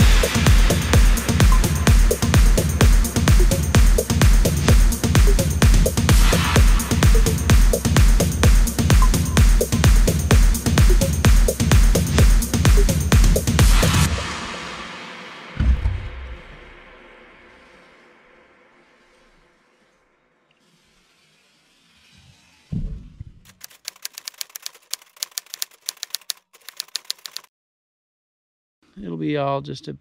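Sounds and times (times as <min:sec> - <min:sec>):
electronic background music: 0:00.0 - 0:14.9
low thud: 0:15.6 - 0:17.0
typewriter key clacks: 0:23.5 - 0:27.5.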